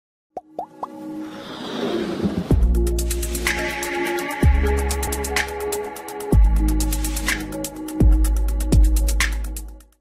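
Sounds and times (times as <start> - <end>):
plop sound effects: 0.4 - 1.0.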